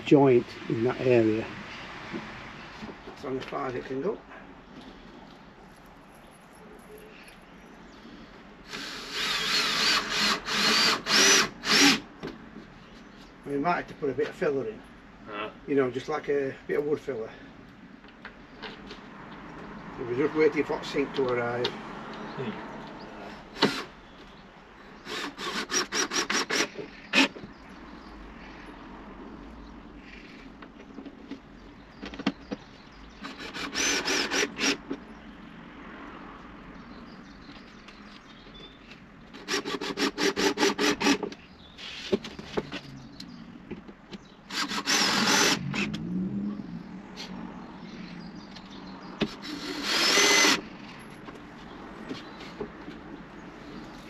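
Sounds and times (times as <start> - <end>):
power drill running: 8.7 - 12.0, 25.0 - 27.3, 33.2 - 34.8, 39.4 - 41.2, 44.5 - 45.6, 49.3 - 50.6.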